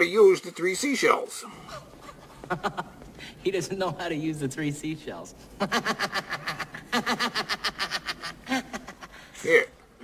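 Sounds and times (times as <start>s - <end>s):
person laughing: 5.6s - 9.3s.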